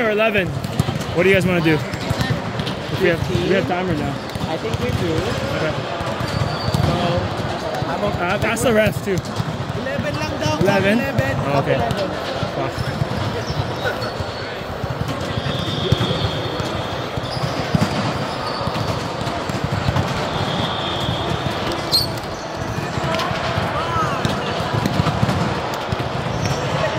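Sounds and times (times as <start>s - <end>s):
players' voices: 0.0s - 26.9s
volleyballs struck and bouncing: 0.0s - 26.9s
high squeaks: 21.8s - 22.5s.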